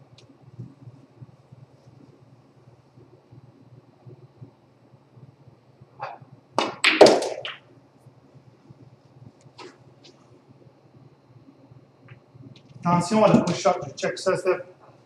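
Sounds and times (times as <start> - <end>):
cue tip striking ball: 6.0 - 7.7
ball dropping into pocket: 6.6 - 7.6
balls knocking together: 6.6 - 7.7.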